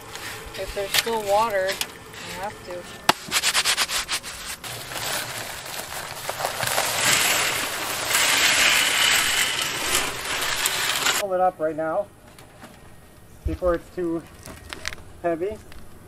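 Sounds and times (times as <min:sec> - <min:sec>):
crackles: 0:00.0 - 0:11.2, 0:12.2 - 0:16.0
dry mix pouring into water: 0:04.5 - 0:11.2.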